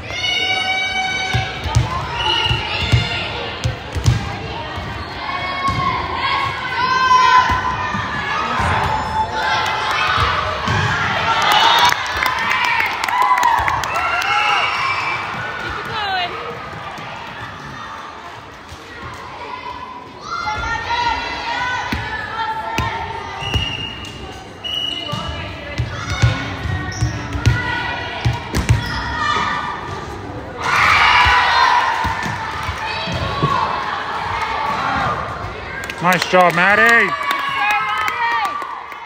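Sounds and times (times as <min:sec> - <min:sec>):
cheering: 0:05.2 - 0:18.2, 0:30.6 - 0:39.0.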